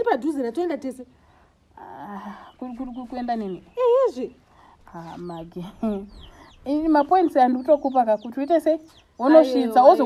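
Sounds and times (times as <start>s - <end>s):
small birds chirping: 0.0s - 10.0s
chickens clucking: 2.2s - 10.0s.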